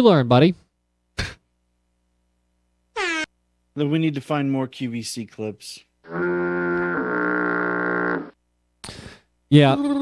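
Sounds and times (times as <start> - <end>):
buzzy horn-like tone: 6.0 - 8.4.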